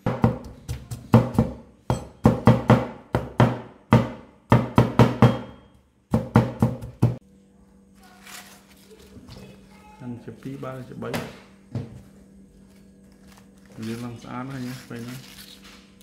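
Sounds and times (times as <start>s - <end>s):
cleaver chopping on wooden board: 0.0s - 5.5s
faint handling sounds: 12.0s - 16.0s.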